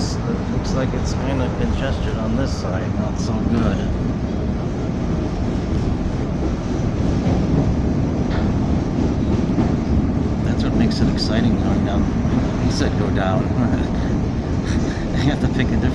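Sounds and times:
train wheels on rails: 0:00.0 - 0:15.9.

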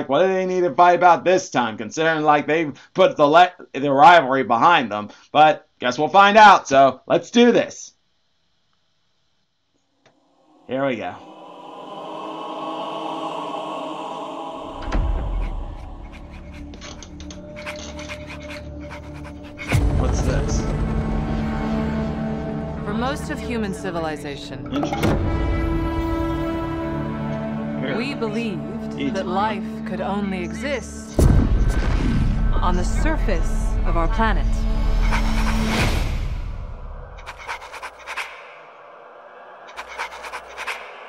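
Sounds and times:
low drone: 0:10.1 - 0:41.0
sustained orchestral music: 0:10.6 - 0:36.4
rapid breathy clicking: 0:15.0 - 0:19.9, 0:37.2 - 0:38.6, 0:39.7 - 0:41.0
recording pen scratching paper: 0:15.4 - 0:19.8, 0:35.0 - 0:35.8, 0:37.2 - 0:38.4, 0:39.7 - 0:40.9
sudden deep boom: 0:31.2 - 0:32.9.

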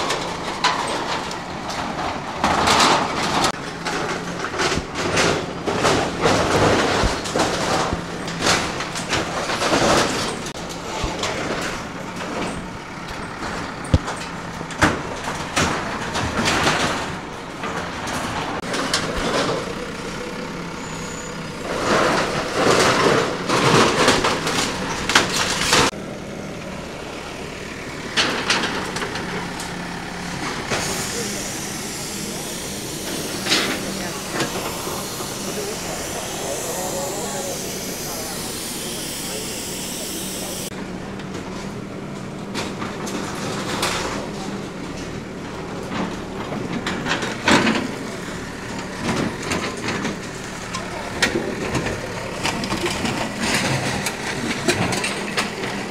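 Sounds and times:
heavy machinery engine humming: 0:00.0 - 0:55.9
people talking nearby: 0:26.8 - 0:41.1, 0:43.4 - 0:55.9.

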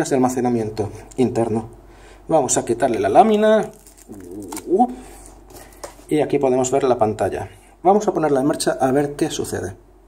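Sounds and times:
plastic film peeling: 0:03.3 - 0:06.1.

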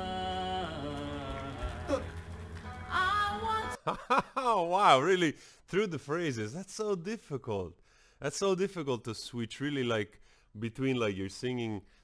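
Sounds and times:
man singing a pop ballad: 0:00.0 - 0:02.3.

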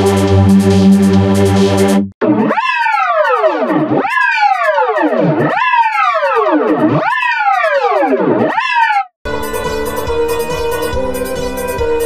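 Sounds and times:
synthetic looping pitch-bend tone: 0:00.0 - 0:08.7.

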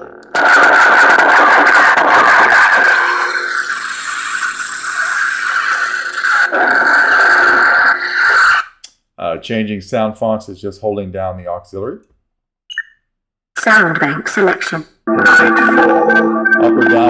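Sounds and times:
high electronic whine: 0:00.0 - 0:08.7, 0:15.1 - 0:17.0.

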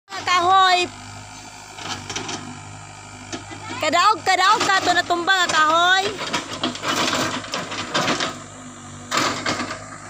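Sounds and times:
excavator diesel engine running: 0:00.1 - 0:10.0.

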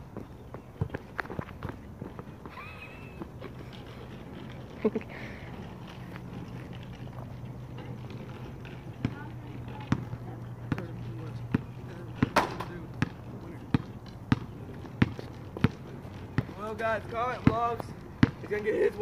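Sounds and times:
basketball bouncing on asphalt: 0:00.0 - 0:02.5, 0:05.6 - 0:19.0.

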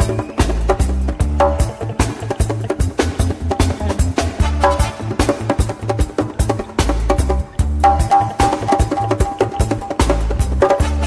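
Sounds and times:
deep bass line: 0:00.0 - 0:11.0
drum and percussion hits: 0:00.0 - 0:11.0
reggae band playing: 0:00.0 - 0:11.0.

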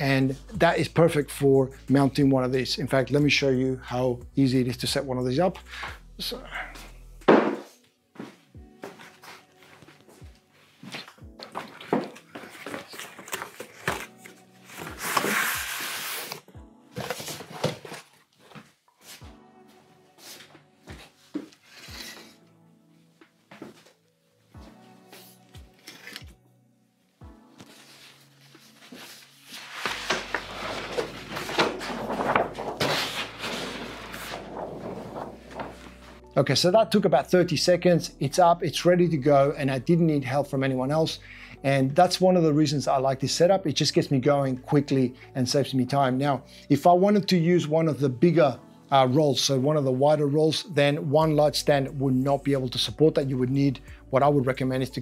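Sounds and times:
background music: 0:00.0 - 0:55.0
paper rustling: 0:10.8 - 0:19.2, 0:25.2 - 0:26.4, 0:27.6 - 0:36.2.

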